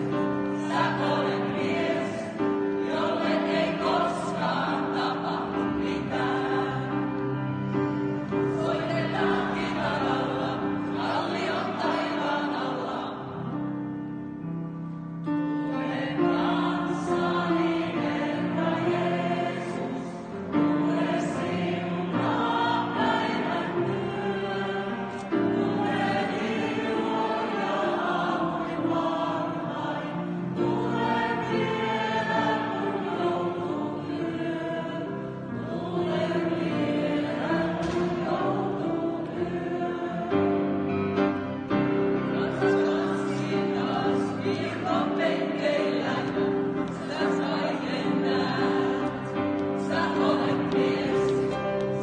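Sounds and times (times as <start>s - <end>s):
choir singing: 0.0s - 14.5s, 15.2s - 52.0s.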